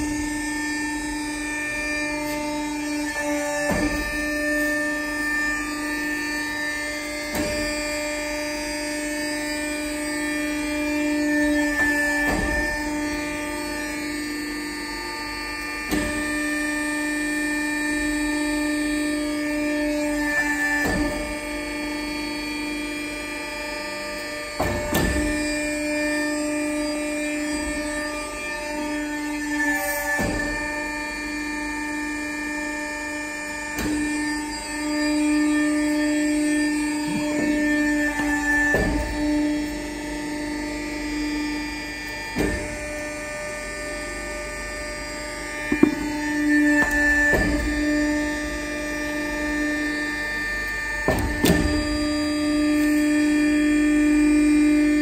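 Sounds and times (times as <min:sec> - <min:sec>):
hydraulic pump hum: 0:00.0 - 0:55.0.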